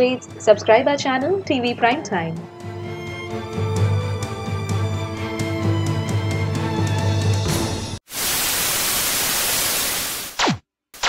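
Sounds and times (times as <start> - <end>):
tv static hiss: 8.0 - 11.0.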